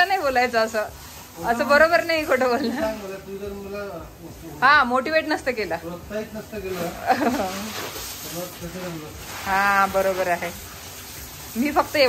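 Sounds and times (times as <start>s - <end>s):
garden hose spray hissing: 0.0s - 12.0s.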